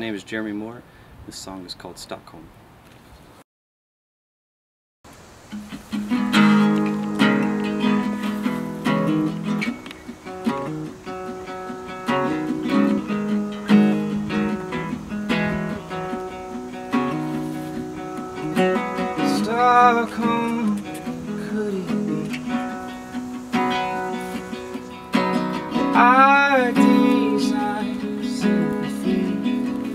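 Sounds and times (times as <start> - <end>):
acoustic guitar picked melody: 5.1 - 29.9.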